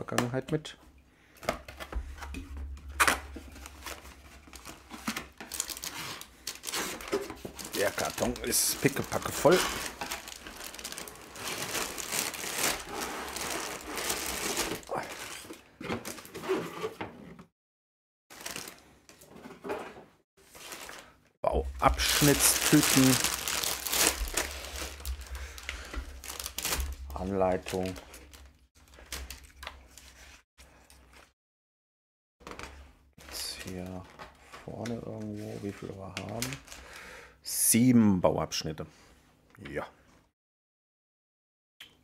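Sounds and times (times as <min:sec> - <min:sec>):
paper pages rustling: 0:02.9 - 0:14.8, 0:22.0 - 0:30.4
plastic bags crinkling: 0:02.9 - 0:15.4, 0:18.3 - 0:18.9, 0:20.4 - 0:29.7.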